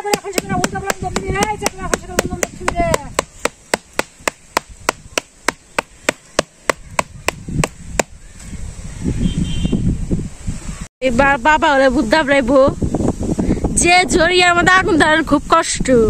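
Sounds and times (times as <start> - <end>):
bamboo tray knocking: 0.0 - 8.1.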